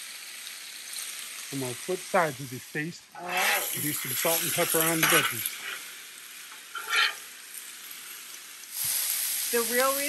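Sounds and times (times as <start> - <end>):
food sizzling on a griddle: 0.0 - 10.0.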